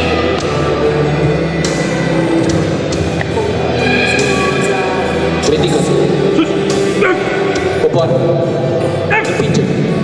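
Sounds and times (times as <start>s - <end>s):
background music: 0.0s - 10.0s
people shouting calls: 6.2s - 7.8s.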